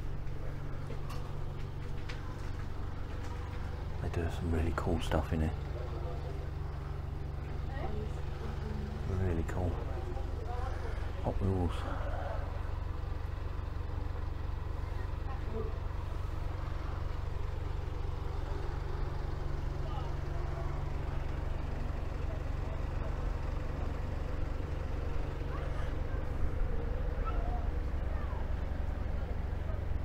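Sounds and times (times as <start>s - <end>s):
faint voices: 0.3s - 13.0s, 18.4s - 30.0s.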